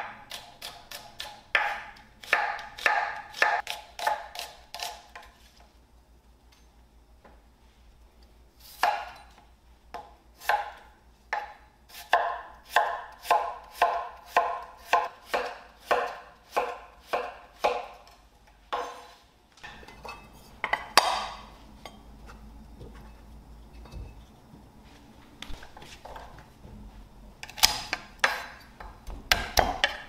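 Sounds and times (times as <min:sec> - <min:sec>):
knife chopping on cutting board: 0:00.0 - 0:05.3, 0:10.4 - 0:18.0, 0:27.6 - 0:28.6.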